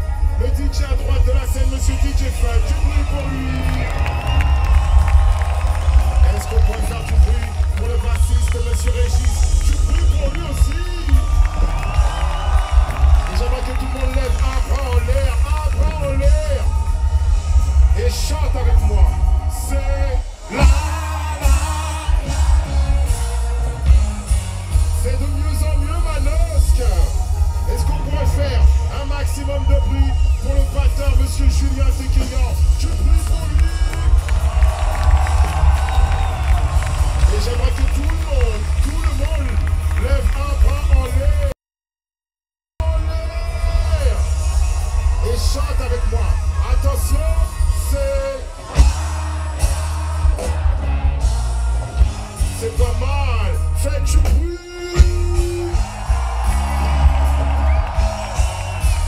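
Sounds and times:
audience cheering and whooping: 0.0s - 41.5s, 42.8s - 53.8s, 54.8s - 59.0s
crowd voices: 0.0s - 41.5s, 42.8s - 59.0s
live band playing a groove: 0.0s - 41.5s, 42.8s - 59.0s
booming bass: 42.8s - 59.0s.

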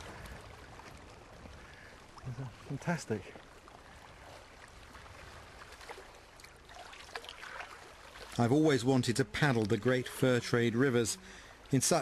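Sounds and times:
water around a canoe: 0.0s - 12.0s.

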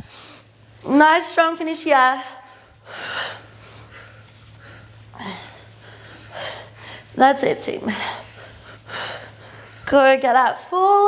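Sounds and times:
faint steady low hum: 0.0s - 11.0s
woman breathing hard: 2.4s - 7.2s, 7.9s - 9.9s.

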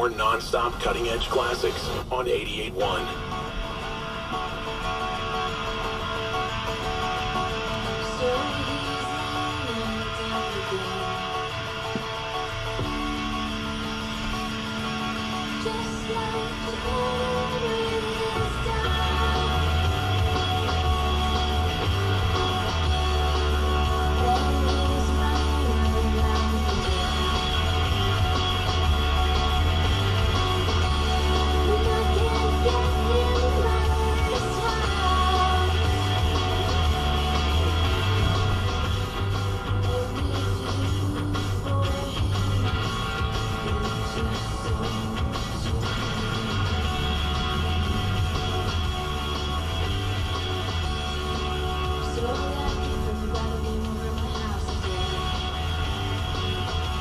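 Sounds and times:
strummed guitar music on radio: 0.0s - 57.0s.

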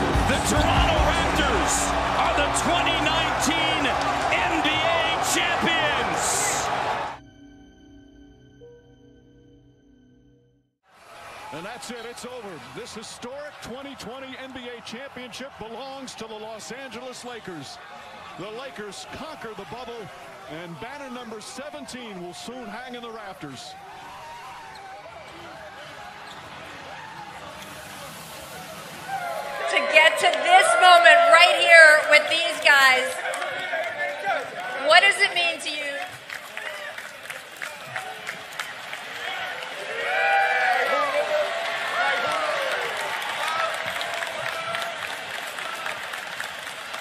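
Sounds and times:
crowd voices and shouts: 0.0s - 7.2s, 10.9s - 47.0s
group of people clapping: 0.0s - 7.2s, 29.6s - 47.0s
voices: 0.3s - 6.9s.

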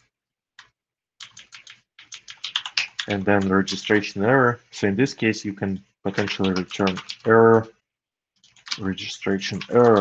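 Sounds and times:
typing on computer keyboard: 0.6s - 4.0s, 6.1s - 7.3s, 8.4s - 10.0s.

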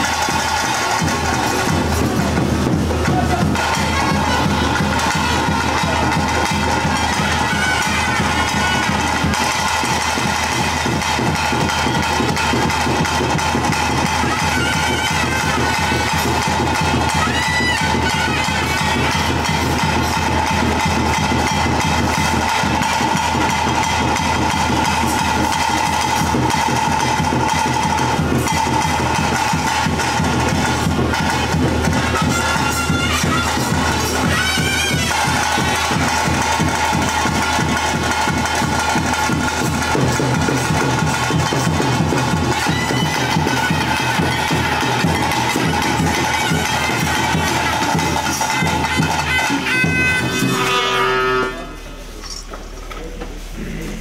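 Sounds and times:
fast dense drumming: 0.0s - 52.0s
reed pipe melody: 0.0s - 54.0s.

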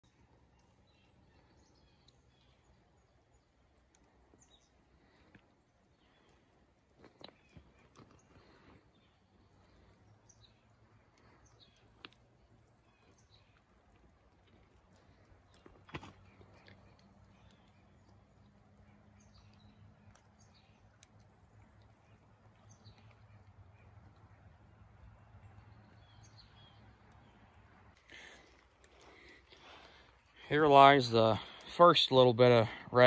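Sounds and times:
faint bird chirps: 7.2s - 14.2s.

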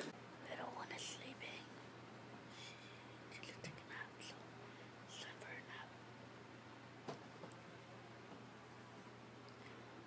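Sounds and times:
steady low hum: 0.0s - 10.0s
faint whispering: 0.4s - 1.8s, 2.6s - 4.5s, 5.1s - 6.0s.

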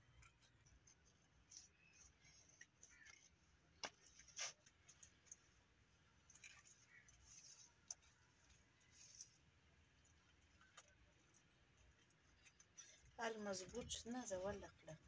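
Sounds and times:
soft mud squelches: 0.0s - 15.0s.

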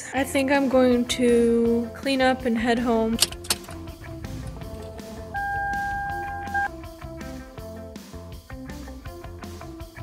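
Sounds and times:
background music: 0.0s - 10.0s
steady electronic beep: 5.1s - 6.7s.

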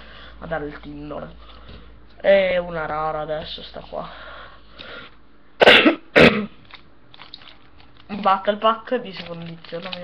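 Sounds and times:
person coughing: 5.6s - 6.6s.

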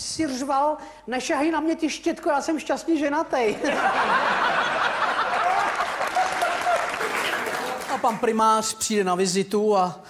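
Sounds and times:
audience laughter: 3.5s - 8.2s
audience applauding: 4.4s - 8.4s.

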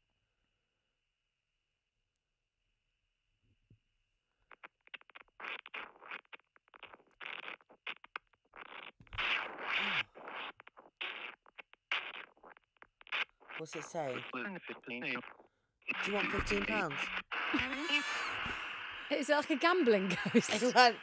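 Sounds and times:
chopped bursts of radio static: 5.0s - 21.0s.

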